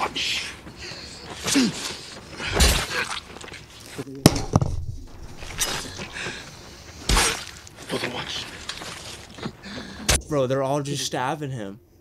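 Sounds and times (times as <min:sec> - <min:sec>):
knife stabbing blows: 0:07.1 - 0:07.6.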